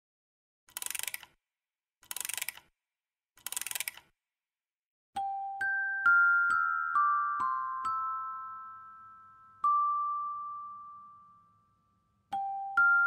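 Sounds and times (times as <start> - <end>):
background music with bell notes: 5.2 - 13.0.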